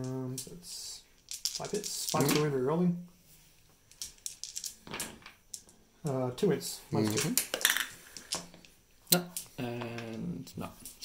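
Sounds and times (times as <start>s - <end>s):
dice clattering on a table: 1.2s - 2.6s, 3.9s - 5.8s, 7.0s - 8.8s.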